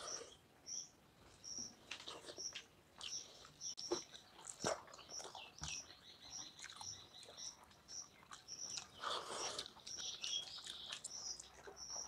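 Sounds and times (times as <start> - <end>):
high bird chirps: 0.0 - 1.8
chewing mouth sounds: 1.9 - 5.8, 6.4 - 12.0.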